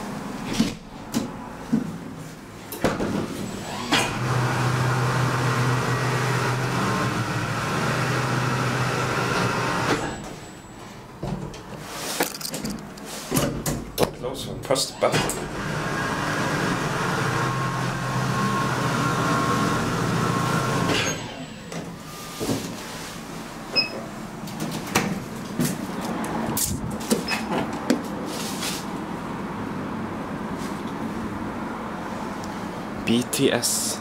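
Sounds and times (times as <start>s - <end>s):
lift drive humming and whining: 2.6s - 11.7s, 14.5s - 27.8s.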